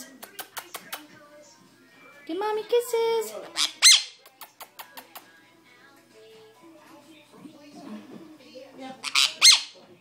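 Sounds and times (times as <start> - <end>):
parrot squawking: 3.4 - 4.2, 9.0 - 9.8.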